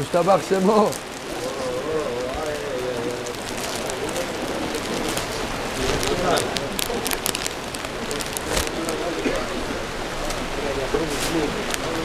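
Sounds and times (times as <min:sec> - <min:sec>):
clicks and rustles: 0:00.0 - 0:12.0
murmur of people talking: 0:00.0 - 0:12.0
steady hiss: 0:00.0 - 0:12.0.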